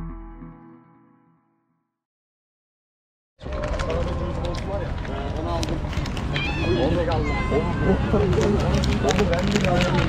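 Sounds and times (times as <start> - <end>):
low traffic rumble: 3.4 - 10.0
people talking: 6.7 - 10.0.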